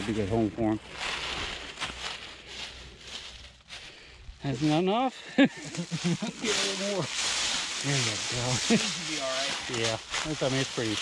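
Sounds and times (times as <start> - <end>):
dry leaves rustling and crunching: 0.0 - 5.0, 5.6 - 11.0.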